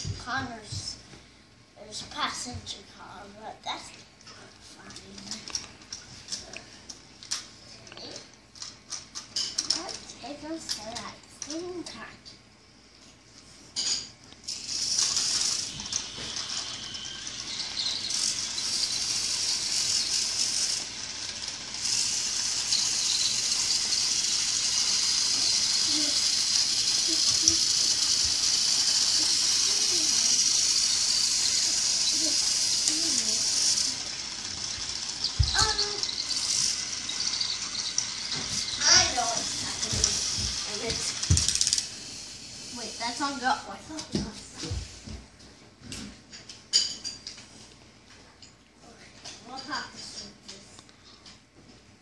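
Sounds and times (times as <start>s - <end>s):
toy train motor whirring: 1.9s - 12.0s, 13.8s - 44.9s, 49.4s - 50.6s.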